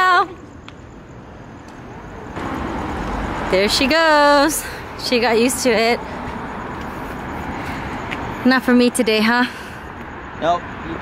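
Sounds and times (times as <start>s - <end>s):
distant traffic: 0.0s - 11.0s.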